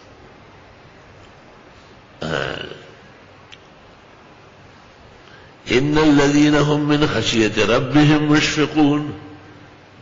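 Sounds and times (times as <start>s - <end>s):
man burping or clearing throat: 2.2s - 3.1s.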